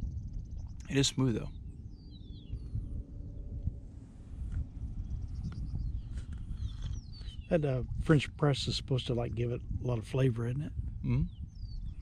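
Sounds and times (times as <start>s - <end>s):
faint bird chirps: 0.0s - 3.7s, 4.8s - 7.8s, 11.0s - 12.0s
wind rumbling on microphone: 0.0s - 12.0s.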